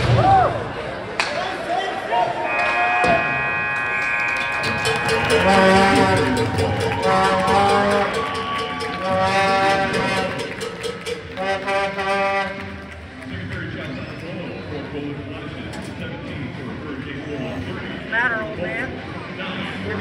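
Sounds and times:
ice rink horn steady tone: 2.2 - 13.0.

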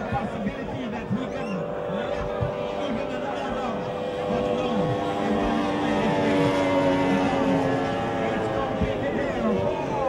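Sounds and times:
powerboat outboard engine whine: 0.0 - 10.0.

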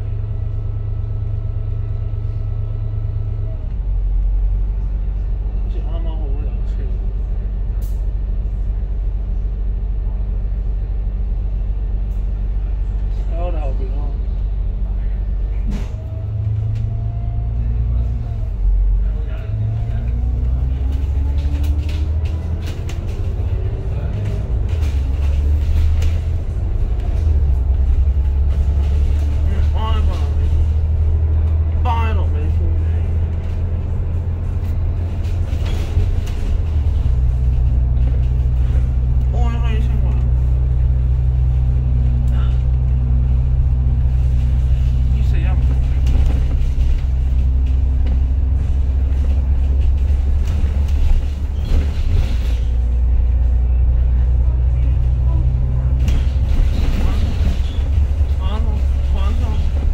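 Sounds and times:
bus diesel engine drone: 0.0 - 59.9
road noise: 0.0 - 59.9.

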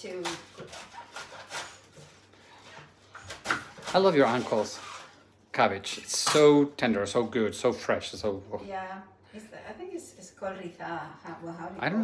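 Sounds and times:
knife crunching through cabbage: 0.1 - 5.2.

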